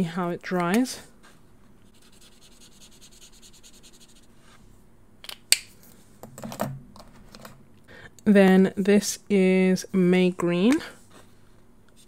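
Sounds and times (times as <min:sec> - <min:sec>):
marker scrubbing on paper: 0:01.8 - 0:04.3.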